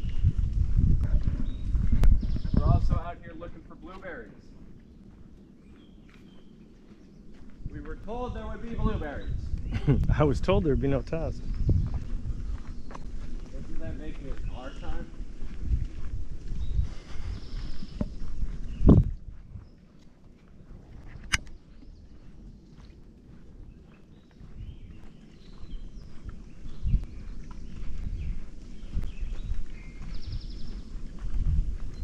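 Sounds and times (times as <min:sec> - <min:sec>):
faint birdsong: 0:00.0 - 0:32.0
footsteps on sandy dirt trail: 0:00.0 - 0:32.0.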